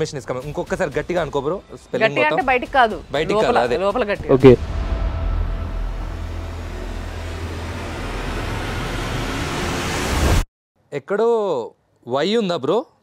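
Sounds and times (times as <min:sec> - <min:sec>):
low rumble: 0:04.2 - 0:10.4.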